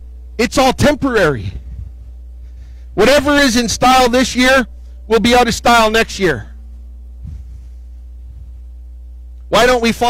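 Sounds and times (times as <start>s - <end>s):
low hum with higher tones: 0.0s - 10.0s.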